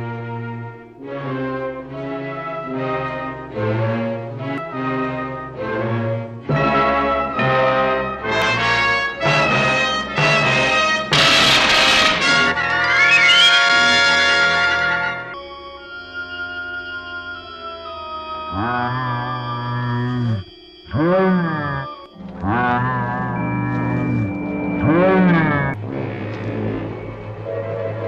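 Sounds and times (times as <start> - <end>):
orchestral music with brass: 0.0 - 15.4, 25.2 - 28.0.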